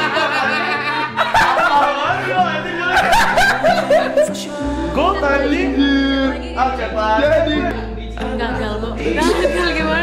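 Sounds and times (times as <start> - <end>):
hearty laughter: 0.0 - 4.5
background music: 0.0 - 10.0.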